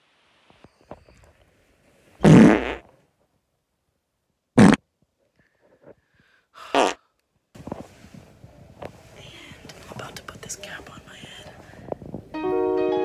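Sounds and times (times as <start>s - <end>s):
fart-like noises: 2.2s - 2.9s, 4.6s - 4.8s, 6.7s - 7.0s.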